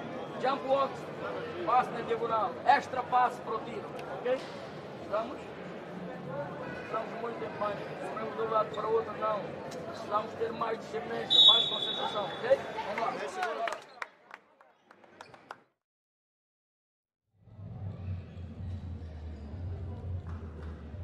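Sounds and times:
arena background noise: 0.0 - 13.8
high whistle: 11.3 - 12.3.

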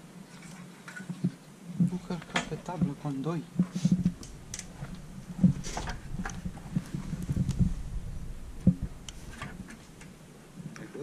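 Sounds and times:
short scraping: 3.6 - 7.9
camera handling rumble: 3.6 - 10.2.

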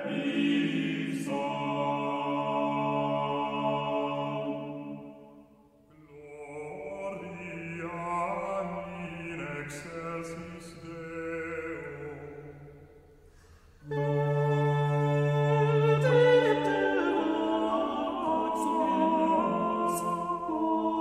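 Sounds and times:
male choir singing: 0.0 - 5.3, 6.1 - 12.5, 13.9 - 21.0
breath: 13.2 - 13.8.

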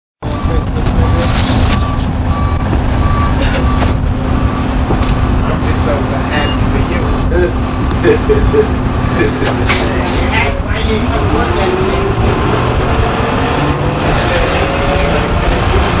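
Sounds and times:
bus diesel engine drone: 0.2 - 16.0
short beeps: 0.3 - 5.6, 6.2 - 6.9, 7.5 - 11.5
passengers' voices: 4.9 - 16.0.

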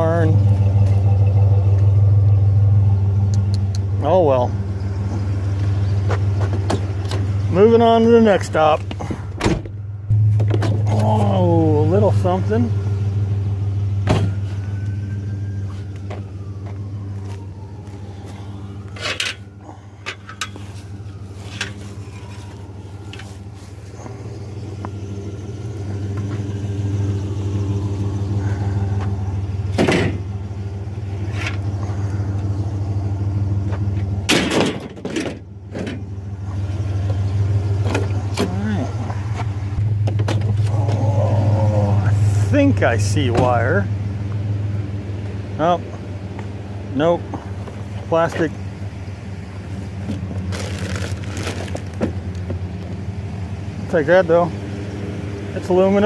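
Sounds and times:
pickup truck engine humming: 0.0 - 56.0
sharp knocks and clunks: 14.0 - 14.4, 29.7 - 30.3.

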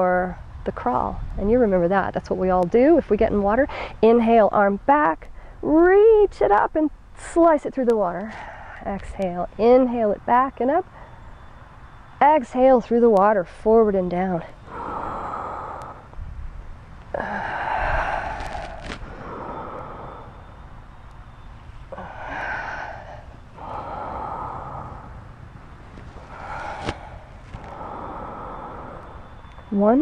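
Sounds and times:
woman breathing: 14.6 - 16.2, 17.1 - 20.7, 21.9 - 25.4, 26.1 - 29.4.

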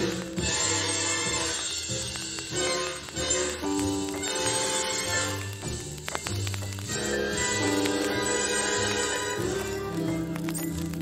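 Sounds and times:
jazz band playing: 0.0 - 11.0.

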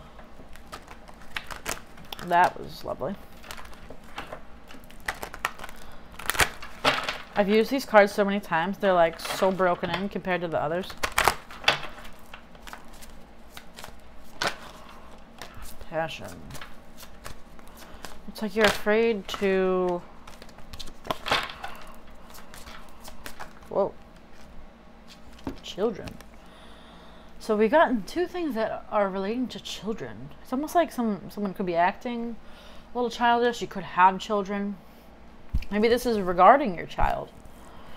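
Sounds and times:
cards being shuffled: 0.1 - 7.8, 9.0 - 26.3.

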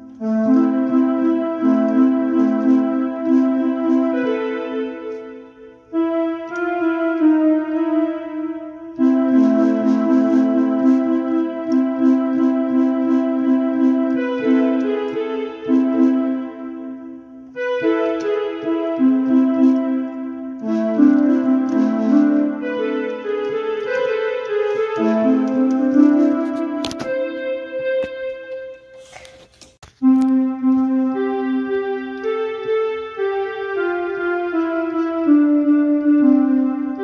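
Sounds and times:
electronic keyboard melody and chords: 0.0 - 37.0.

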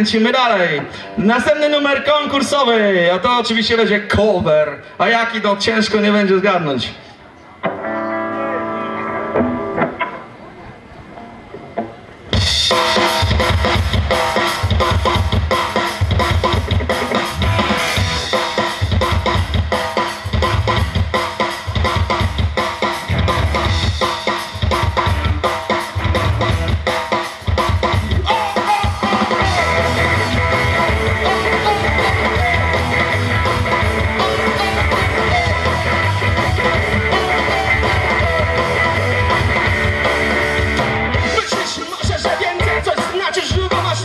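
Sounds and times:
electric guitars: 7.6 - 44.0
drum kit: 11.7 - 44.0.

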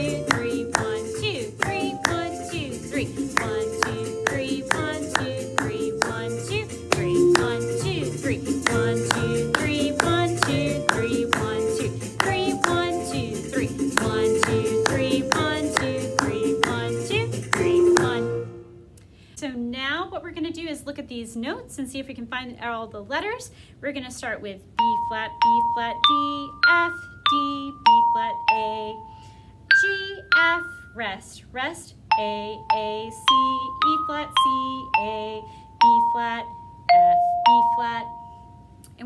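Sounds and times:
hands clapping rhythm: 0.0 - 18.2
recorded folk music: 0.0 - 18.7.

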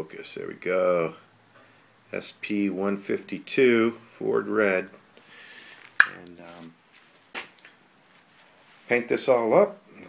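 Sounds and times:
man's voice: 2.1 - 5.0, 6.0 - 6.8
short hissy burst: 5.2 - 6.0.

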